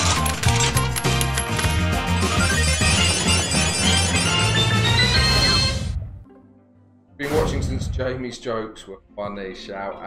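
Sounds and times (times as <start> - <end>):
clinking sound effects: 0.0 - 1.9.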